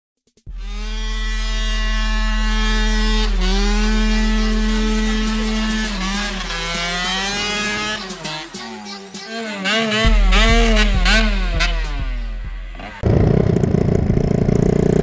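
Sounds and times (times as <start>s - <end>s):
small motorcycle engine revving: 0.5s - 15.0s.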